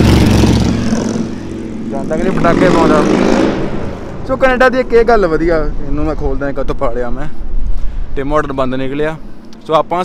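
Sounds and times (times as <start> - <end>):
motorcycle riding past: 0.0 - 4.3.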